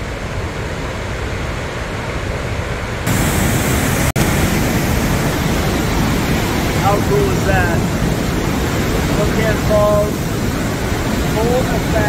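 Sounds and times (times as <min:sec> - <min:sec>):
rushing whitewater: 0:00.0 - 0:12.0.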